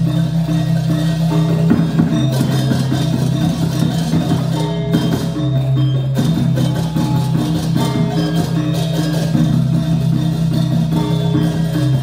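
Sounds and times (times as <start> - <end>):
gamelan ensemble playing: 0.0 - 12.0.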